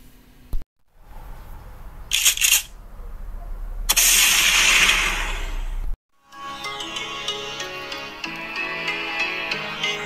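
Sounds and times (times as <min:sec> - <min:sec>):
sharp cracks: 0:02.1 - 0:02.8.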